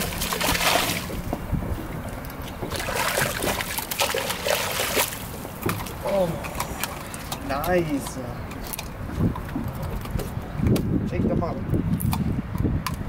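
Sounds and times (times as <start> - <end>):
fish splashing in water: 0.0 - 7.5.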